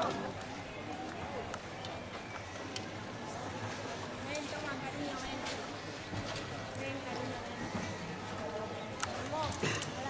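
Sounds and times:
murmur of spectators: 0.0s - 10.0s.

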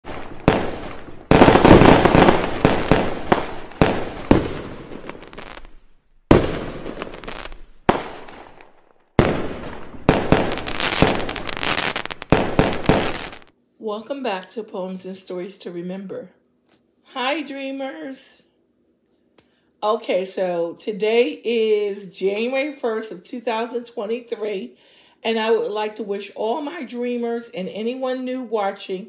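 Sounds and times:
fireworks bangs: 0.0s - 13.5s
fireworks crackling: 0.0s - 13.5s.

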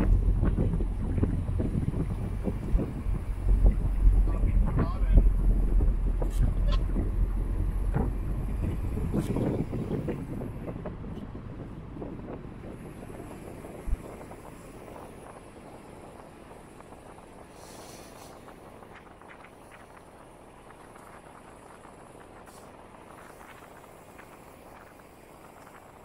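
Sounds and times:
low road rumble: 0.0s - 26.0s
scattered crackles: 0.0s - 26.0s
wind rushing over microphone: 0.0s - 26.0s.

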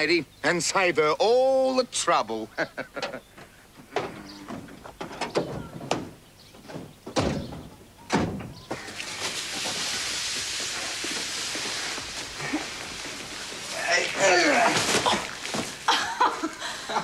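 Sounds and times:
sharp knocks and thuds: 3.4s - 12.4s
steady hiss: 8.8s - 17.0s.

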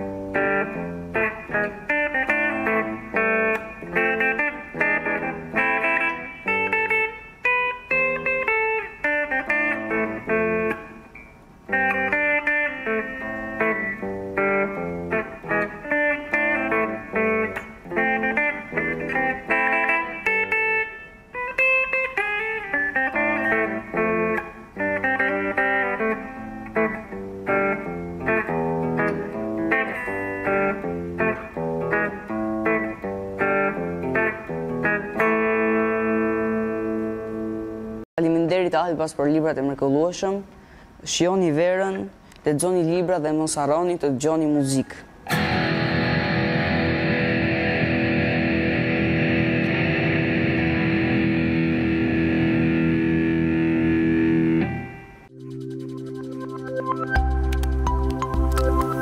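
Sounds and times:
electric guitar melody: 0.0s - 38.1s, 45.2s - 59.0s.

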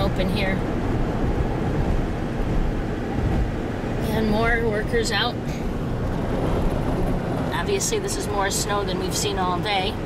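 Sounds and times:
car road noise rumble: 0.0s - 10.0s.

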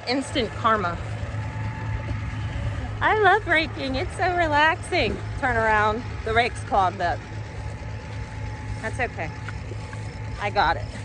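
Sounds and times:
tractor engine humming: 0.0s - 11.0s.

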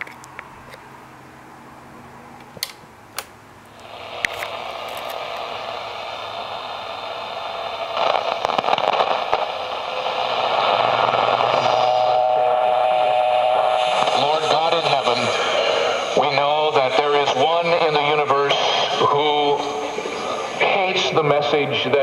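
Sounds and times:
radio static hiss: 3.7s - 22.0s
steady whistling tone: 10.4s - 17.3s.

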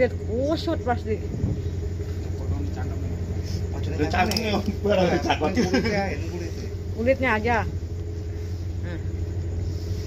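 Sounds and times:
low engine hum: 0.0s - 10.0s.

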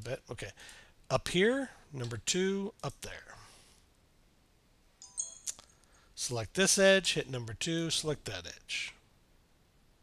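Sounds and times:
faint ringing tone: 5.0s - 6.1s.

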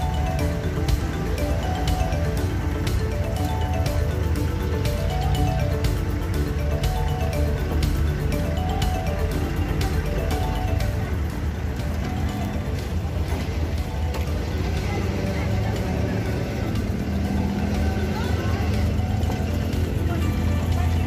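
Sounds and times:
background music: 0.0s - 21.0s
boat engine humming: 0.0s - 21.0s.

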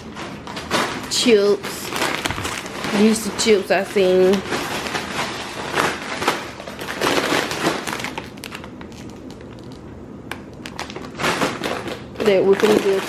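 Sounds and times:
plastic chip bags crinkling: 0.0s - 13.0s.

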